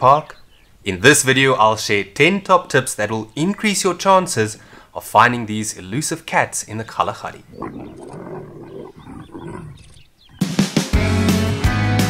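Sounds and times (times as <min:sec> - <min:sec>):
leopards growling: 0:07.0 - 0:10.5.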